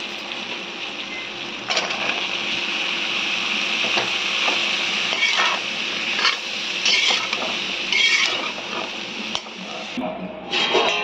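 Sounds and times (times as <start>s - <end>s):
vegetables sizzling in oil: 0.0s - 10.0s
metal spoon scraping a pan: 5.1s - 11.0s.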